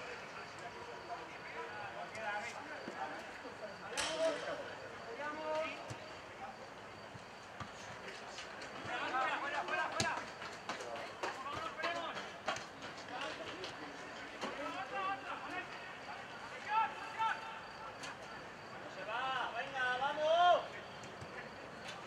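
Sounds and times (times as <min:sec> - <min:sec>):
players shouting calls: 0:14.4 - 0:21.6.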